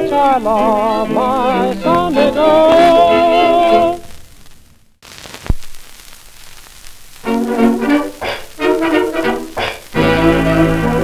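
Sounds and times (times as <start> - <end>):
record surface crackle and hiss: 0.0 - 11.0.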